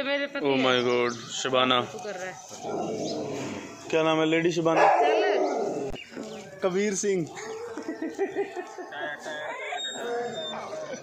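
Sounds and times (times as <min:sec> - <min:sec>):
dog howling: 0:09.5 - 0:11.0.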